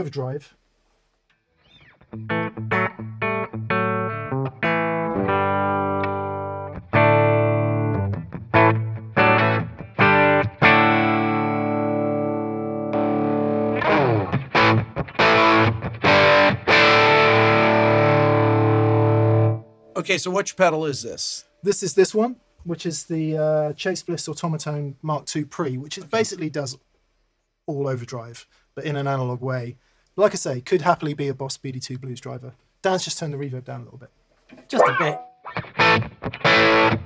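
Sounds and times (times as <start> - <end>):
electric guitar through an amp: 2.0 - 19.7, 34.8 - 37.0.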